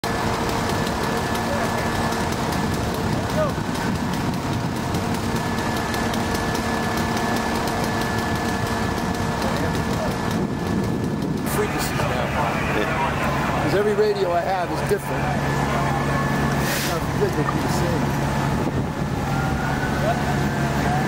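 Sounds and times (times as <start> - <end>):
vehicle engines idling: 0.0 - 21.0
indistinct voices: 11.4 - 21.0.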